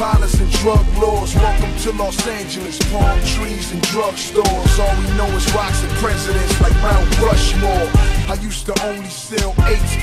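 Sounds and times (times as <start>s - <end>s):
rapping over a beat: 0.0s - 10.0s.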